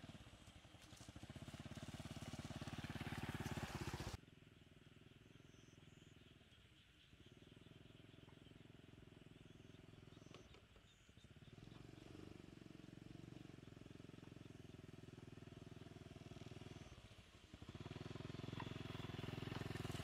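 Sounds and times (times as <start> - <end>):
small motorcycle engine running: 0.0 - 20.0.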